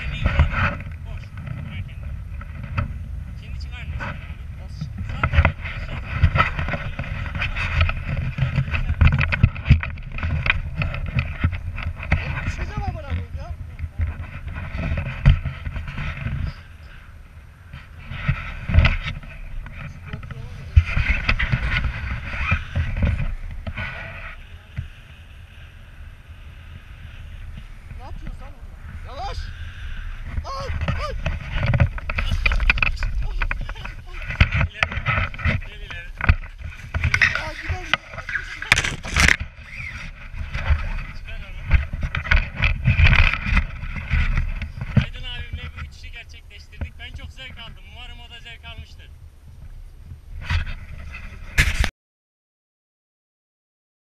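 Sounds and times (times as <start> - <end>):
wind buffeting microphone: 0.0 - 51.9
person talking: 37.2 - 39.0.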